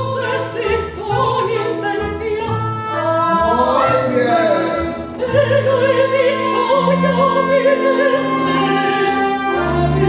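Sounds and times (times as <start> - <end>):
theatre orchestra playing: 0.0 - 10.0
woman singing opera: 0.0 - 10.0.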